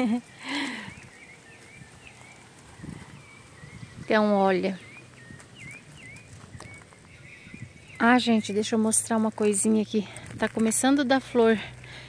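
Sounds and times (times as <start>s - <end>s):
small bird chirping: 0.0s - 9.9s
footsteps on gravel: 0.0s - 12.0s.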